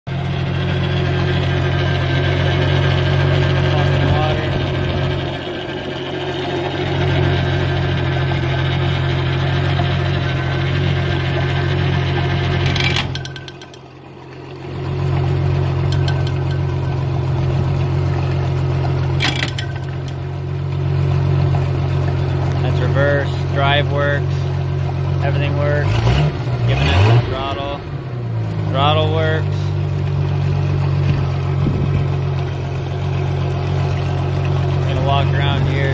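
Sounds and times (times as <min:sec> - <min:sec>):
outboard motor running: 0:00.1 - 0:35.9
water splashing: 0:00.6 - 0:35.9.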